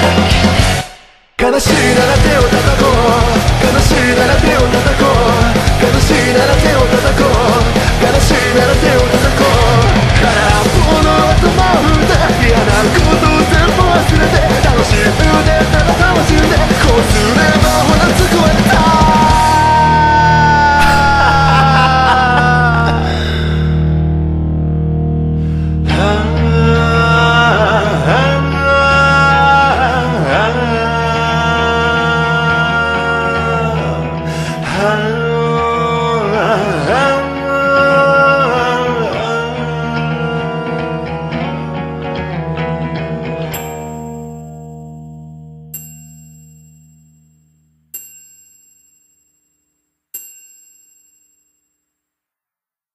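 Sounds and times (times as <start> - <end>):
distorted electric guitar sliding down: 0.0 - 45.7
bell-like chime strikes: 20.8 - 21.8, 45.7 - 49.6.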